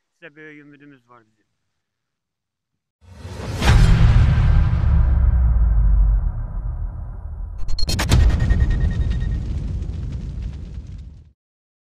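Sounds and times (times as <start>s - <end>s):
cinematic boom with deep rumble: 3.2s - 11.3s.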